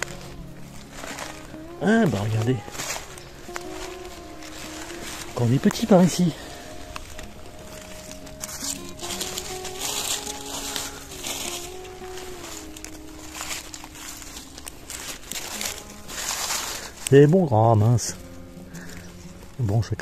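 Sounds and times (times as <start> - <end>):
leaf litter rustling: 0.0 - 20.0.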